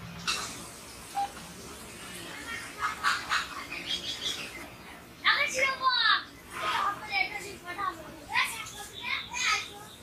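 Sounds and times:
harsh bird calls: 2.4 - 5.8, 8.4 - 10.0
bird chirp: 2.8 - 4.9, 8.5 - 10.0.

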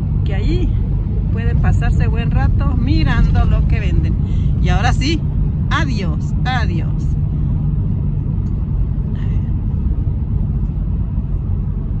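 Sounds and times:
road and engine rumble in car: 0.0 - 12.0.

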